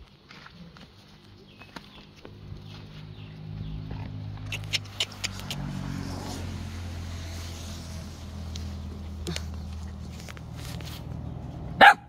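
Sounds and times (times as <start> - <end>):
vehicle engine running: 1.1 - 12.0.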